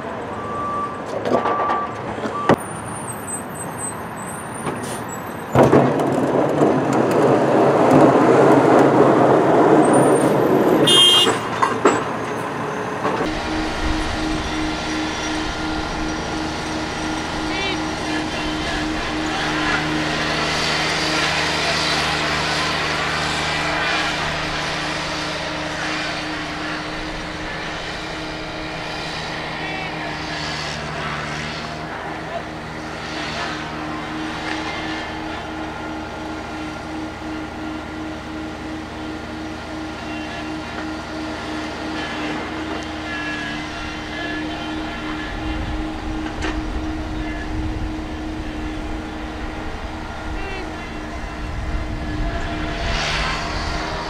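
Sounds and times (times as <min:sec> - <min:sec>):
plow truck rushing noise: 0:00.0 - 0:54.0
tractor engine running steadily: 0:04.5 - 0:54.0.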